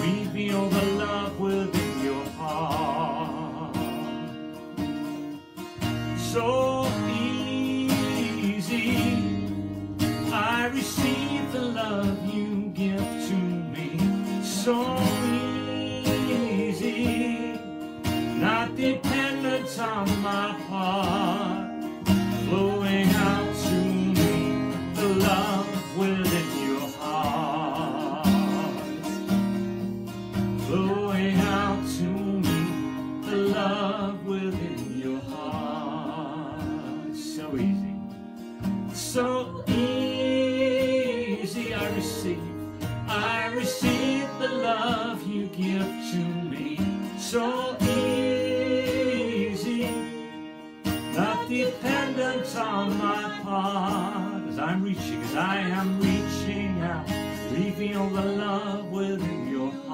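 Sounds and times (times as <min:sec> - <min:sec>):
man singing with vibrato: 0:00.0 - 0:04.6, 0:06.0 - 0:29.2, 0:30.5 - 0:59.9
acoustic guitar: 0:00.0 - 0:59.9.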